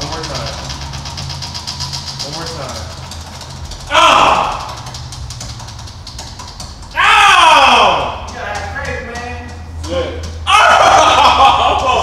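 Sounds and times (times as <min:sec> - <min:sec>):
prize wheel pointer ticking: 0:00.0 - 0:12.0
person whooping: 0:03.9 - 0:04.8, 0:07.0 - 0:08.3, 0:10.5 - 0:12.0.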